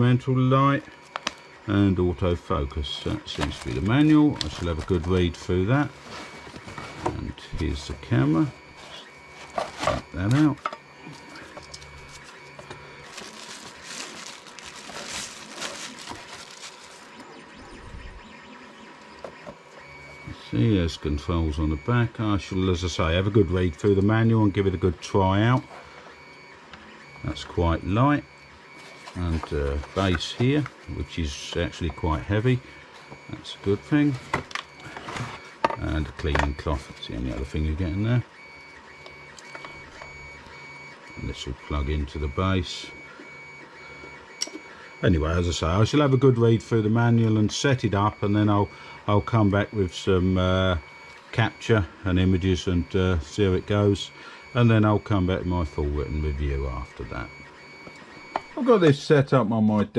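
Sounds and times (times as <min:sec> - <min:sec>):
packaging rustling and crinkling: 0:03.1 - 0:05.3, 0:05.9 - 0:07.3, 0:08.6 - 0:17.4, 0:28.7 - 0:30.9.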